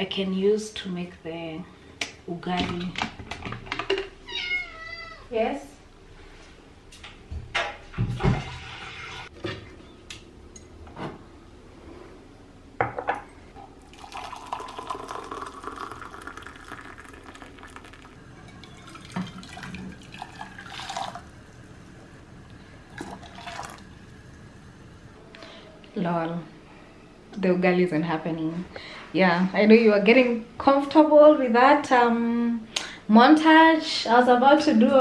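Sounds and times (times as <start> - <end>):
water pouring rising in pitch: 13.8 - 22.1, 22.8 - 24.7
ceramic mugs clinking: 13.9 - 21.3.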